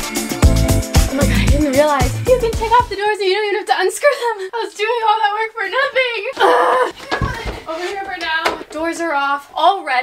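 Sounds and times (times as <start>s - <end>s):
woman talking: 1.1s - 10.0s
wooden door scraping: 6.9s - 8.9s
door knocks and bumps: 7.0s - 7.7s.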